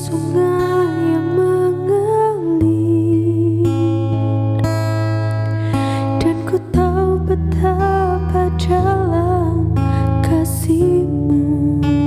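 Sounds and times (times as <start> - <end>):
woman singing: 0.0 - 12.0
classical guitar strumming: 3.2 - 12.0.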